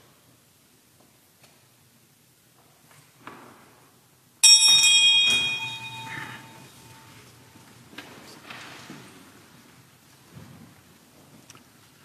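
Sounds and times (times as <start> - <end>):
bell ringing: 4.4 - 7.3.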